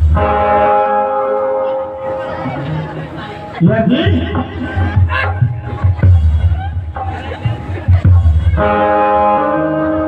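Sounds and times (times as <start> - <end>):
electronic keyboard chord: 0.0 - 5.6.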